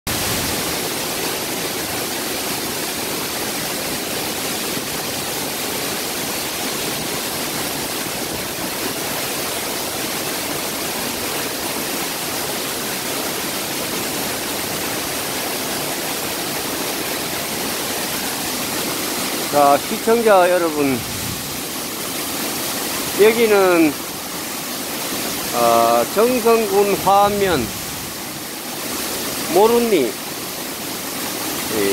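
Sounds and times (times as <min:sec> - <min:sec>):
waterfall pouring: 0:00.1 - 0:31.9.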